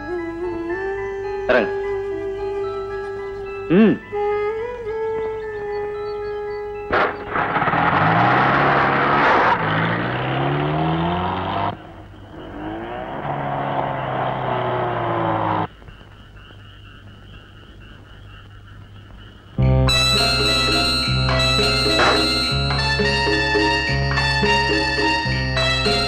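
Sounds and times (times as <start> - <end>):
car engine revving: 6.9 - 15.7, 20.3 - 26.0
high wavering trill: 16.4 - 26.0
held music note: 19.6 - 26.0.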